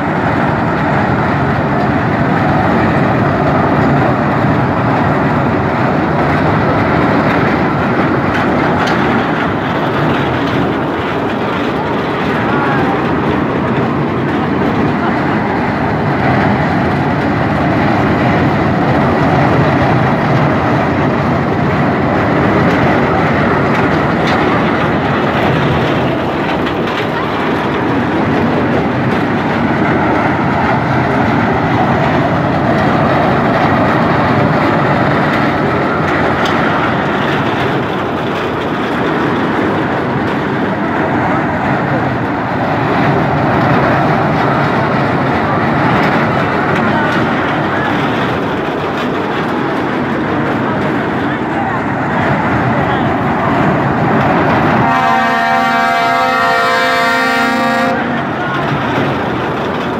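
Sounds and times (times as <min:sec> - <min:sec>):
crowd voices: 0:00.0 - 0:59.9
ride machinery running: 0:00.0 - 0:59.9.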